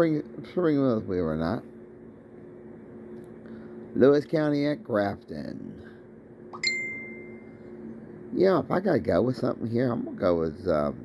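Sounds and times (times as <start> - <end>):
faint low hum: 0.0 - 11.0
bright ding: 6.6 - 7.5.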